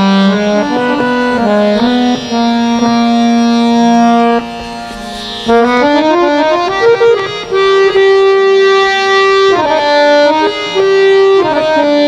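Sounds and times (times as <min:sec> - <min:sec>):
harmonium holding a note: 0:00.0 - 0:12.0.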